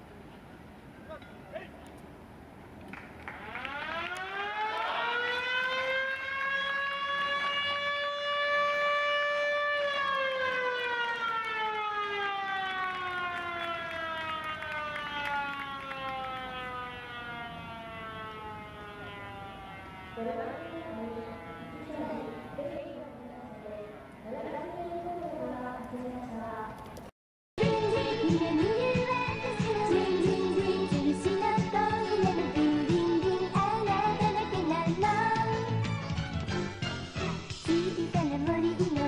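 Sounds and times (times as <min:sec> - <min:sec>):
motor siren wailing: 0:03.3 - 0:24.2.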